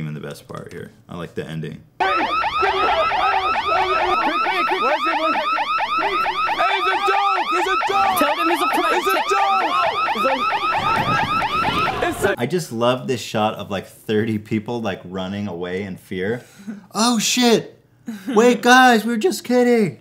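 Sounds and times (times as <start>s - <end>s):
electronic alarm warbling: 2.0s - 12.4s
lower cries: 2.0s - 12.4s.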